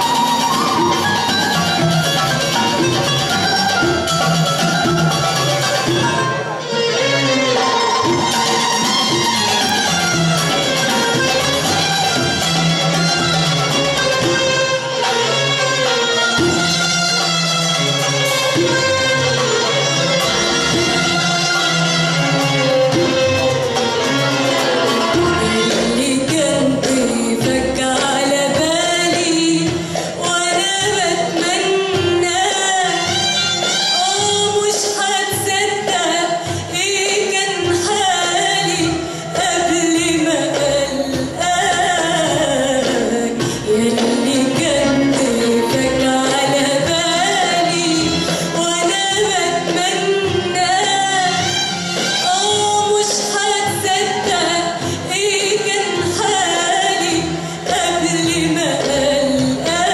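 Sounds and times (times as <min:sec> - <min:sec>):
oud: 0:00.0 - 0:59.9
woman singing with vibrato: 0:24.1 - 0:59.9.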